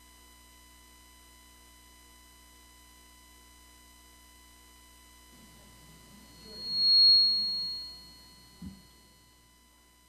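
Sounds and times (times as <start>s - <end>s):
microphone feedback whistle: 5.4s - 9.3s.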